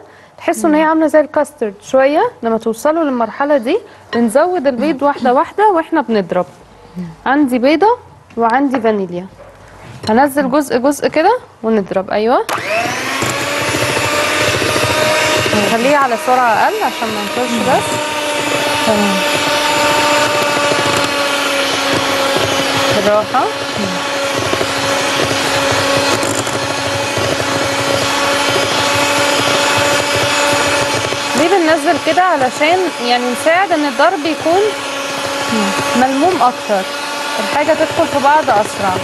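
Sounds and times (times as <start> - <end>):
beaters whirring in batter: 12.5 - 39.0
electric hand mixer whining: 12.5 - 39.0.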